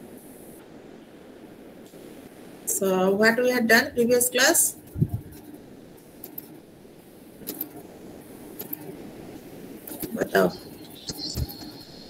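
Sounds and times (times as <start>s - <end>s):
microphone background noise: 0.0s - 12.0s.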